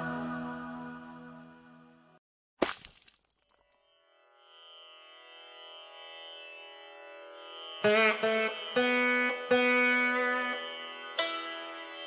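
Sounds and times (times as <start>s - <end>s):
indian classical-style instrumental: 4.4s - 12.0s.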